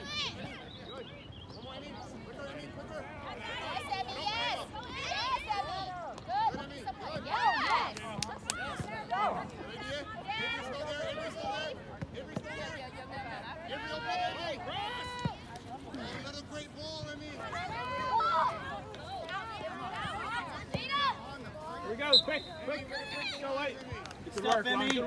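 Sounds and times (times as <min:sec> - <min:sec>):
people calling and shouting: 0:00.0 - 0:25.0.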